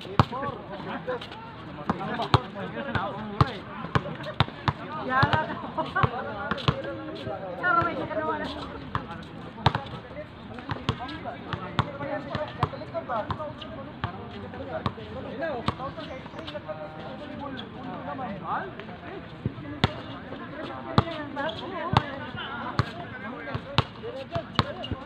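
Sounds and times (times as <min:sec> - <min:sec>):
basketball bouncing on concrete: 0:01.9 - 0:06.9, 0:07.7 - 0:08.2, 0:08.9 - 0:10.0, 0:10.6 - 0:14.2, 0:19.8 - 0:20.1, 0:20.9 - 0:21.2, 0:21.8 - 0:25.0.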